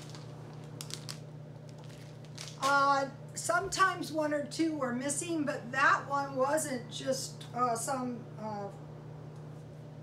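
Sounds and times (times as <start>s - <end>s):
plastic package crinkling: 0.0s - 2.9s
steady low hum: 0.0s - 10.0s.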